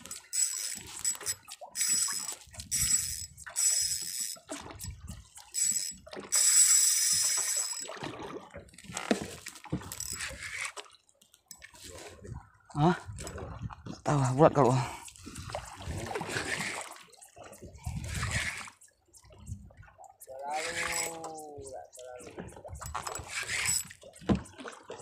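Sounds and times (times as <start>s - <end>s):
fishing reel whirring: 0.0s - 7.9s, 9.8s - 10.8s, 15.3s - 18.9s, 20.2s - 24.2s.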